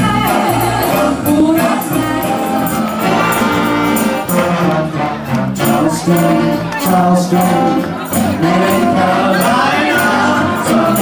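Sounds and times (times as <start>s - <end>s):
big band playing: 0.0s - 11.0s
trumpets and trombones: 0.0s - 11.0s.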